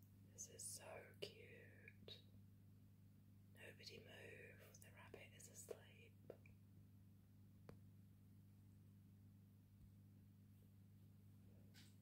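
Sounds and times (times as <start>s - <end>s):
steady low hum: 0.0s - 12.0s
person whispering: 0.4s - 2.2s, 3.6s - 6.2s.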